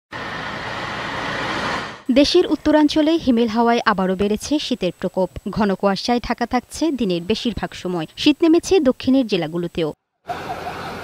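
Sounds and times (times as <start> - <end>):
motorised three-wheeler approaching: 0.1 - 3.1, 10.2 - 11.0
road traffic engine and tyre hiss: 0.1 - 8.8, 10.2 - 11.0.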